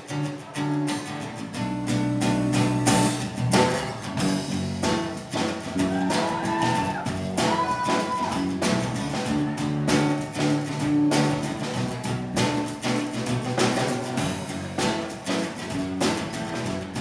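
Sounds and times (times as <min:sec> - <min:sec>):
live band playing: 0:00.0 - 0:17.0
strummed acoustic guitar: 0:00.0 - 0:17.0.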